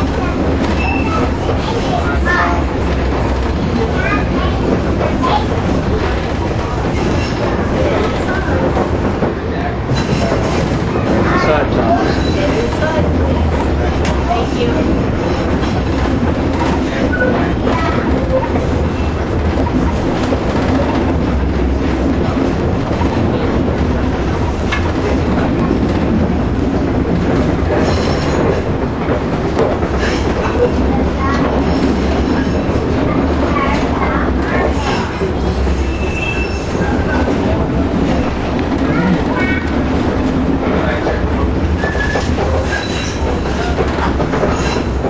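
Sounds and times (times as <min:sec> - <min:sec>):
streetcar wheels rumbling on rails: 0:00.0 - 0:45.0.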